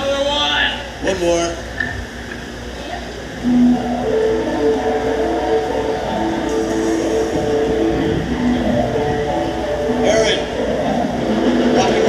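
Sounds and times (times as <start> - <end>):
low hum: 0.8 - 12.0.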